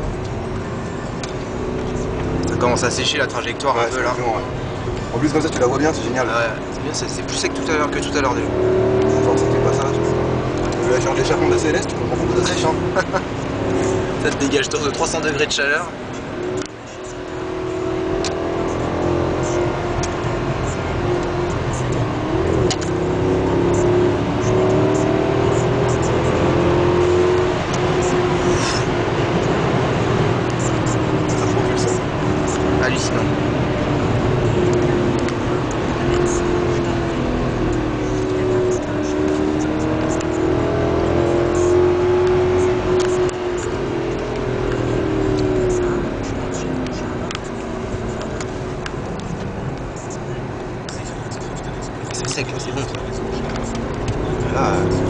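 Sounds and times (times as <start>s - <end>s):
car engine revving: 0.0s - 55.0s
tyre and road noise: 0.0s - 55.0s.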